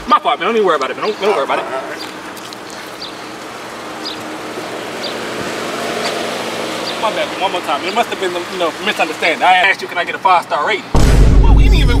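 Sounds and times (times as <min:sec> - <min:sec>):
car engine running: 0:02.0 - 0:12.0.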